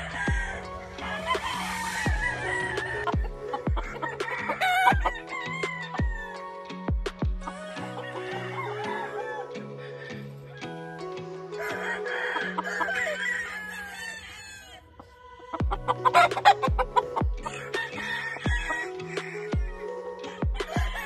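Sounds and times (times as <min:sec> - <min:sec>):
rooster crowing: 0:00.0 - 0:06.5, 0:07.5 - 0:15.5, 0:17.4 - 0:21.0
background music with beat: 0:00.0 - 0:14.1, 0:15.6 - 0:21.0.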